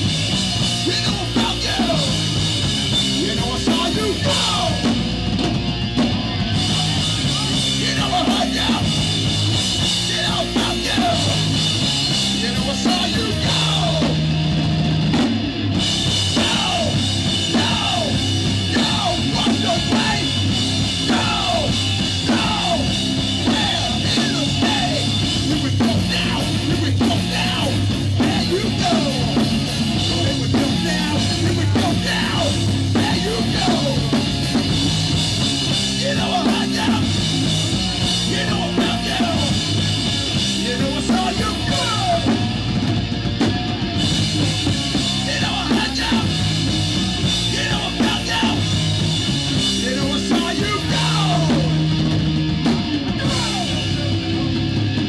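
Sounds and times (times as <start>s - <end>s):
bass guitar: 0.0s - 55.0s
distorted electric guitar: 0.0s - 55.0s
drum kit: 0.0s - 55.0s
punk band playing live: 0.0s - 55.0s.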